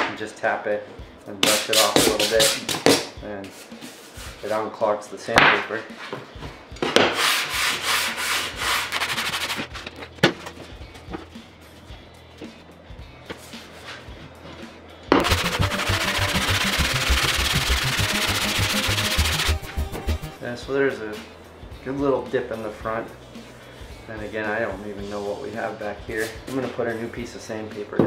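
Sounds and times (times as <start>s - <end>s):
hand plane scraping on sandpaper: 7.1s - 9.7s, 15.2s - 19.6s.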